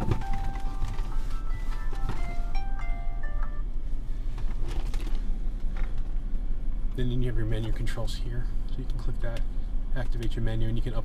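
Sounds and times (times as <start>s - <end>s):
steady low hum: 0.0s - 11.0s
electronic chime tune: 1.4s - 3.7s.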